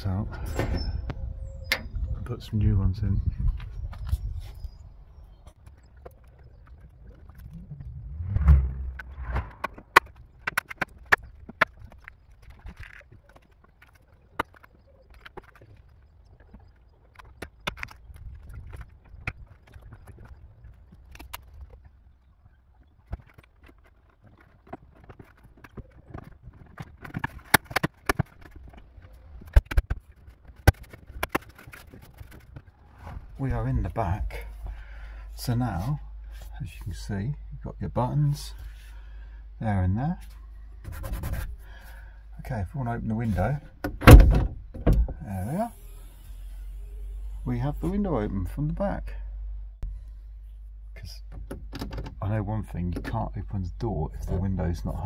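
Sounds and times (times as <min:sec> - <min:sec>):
low rumble: 0:06.4 - 0:10.4.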